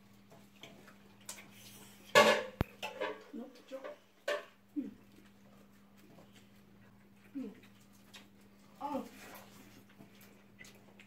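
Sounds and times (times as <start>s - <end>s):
small clicks from eating: 0.1s - 2.0s, 5.0s - 11.0s.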